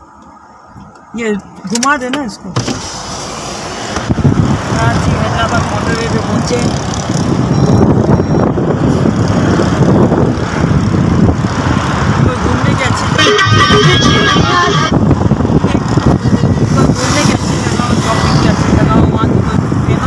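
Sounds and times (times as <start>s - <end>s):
road rumble: 0.0s - 20.0s
wind through open car window: 0.7s - 20.0s
high horn-like tone: 13.1s - 15.0s.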